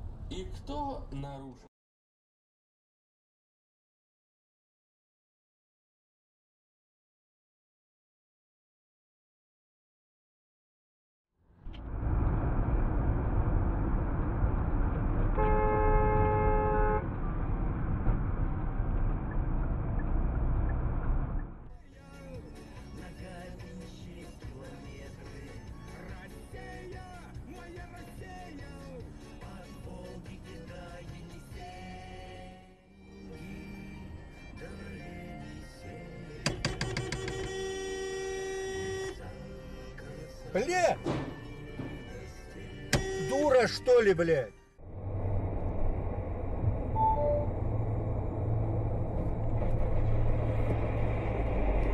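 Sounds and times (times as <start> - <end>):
car horn: 15.3 - 17.2, 36.5 - 39.4, 42.9 - 43.8
quiet music: 21.7 - 37.6, 38.2 - 44.8, 47.0 - 47.6.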